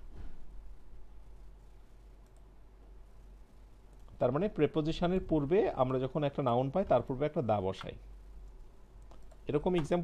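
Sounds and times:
low steady hum: 0:00.0 - 0:10.0
computer keyboard keystrokes: 0:09.0 - 0:10.0
man speaking: 0:09.5 - 0:10.0.

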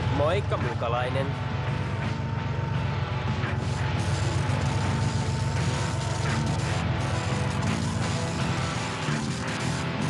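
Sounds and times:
background music: 0:00.0 - 0:10.0
mechanical sound effects: 0:03.3 - 0:10.0.

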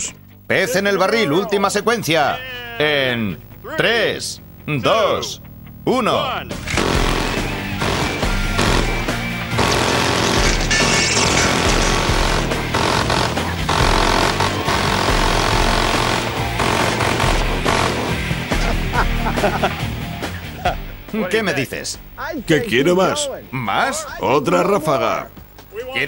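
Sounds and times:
music: 0:00.0 - 0:26.0
minigun firing: 0:06.6 - 0:18.8.

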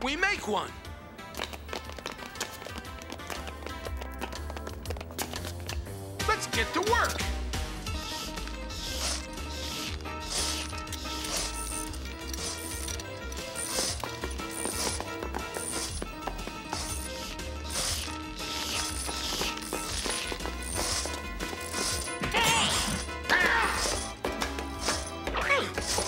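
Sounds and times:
background music: 0:00.0 - 0:26.0
cartoon tool ratcheting and clanking: 0:08.1 - 0:16.1, 0:16.8 - 0:23.1.

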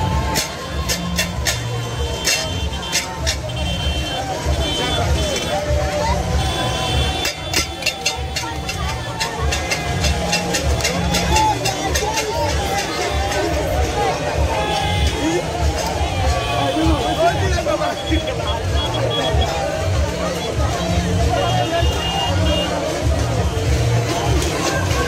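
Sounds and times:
crowd shouting: 0:00.0 - 0:25.0
loud music with pulsing bass beat: 0:00.0 - 0:25.0.

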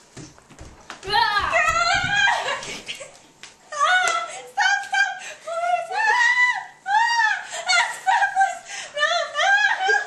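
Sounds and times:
girl screaming: 0:01.1 - 0:02.6.

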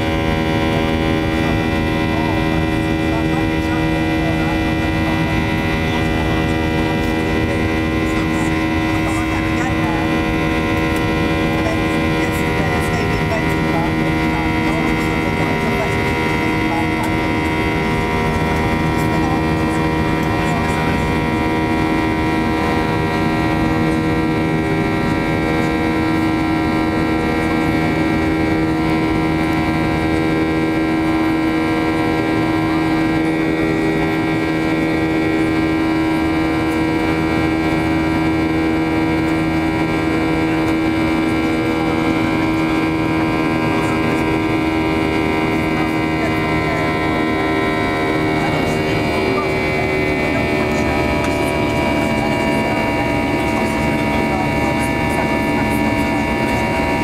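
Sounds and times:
jet engines droning in cabin: 0:00.0 - 0:57.0.

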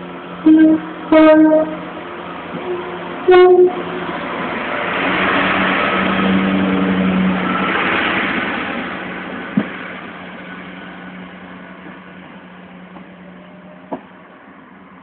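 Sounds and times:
diesel train engine drone: 0:00.0 - 0:15.0.

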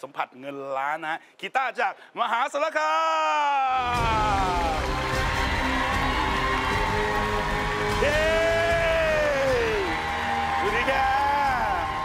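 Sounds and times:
game-show music: 0:03.8 - 0:12.0.

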